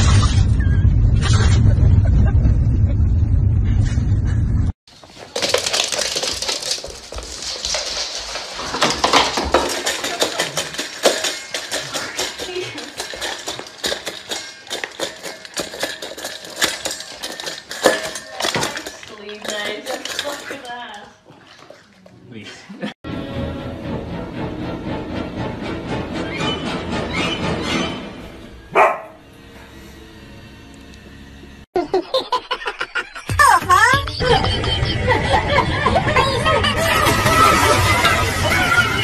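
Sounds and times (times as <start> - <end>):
dog eating from metal bowl: 5.0 - 22.2.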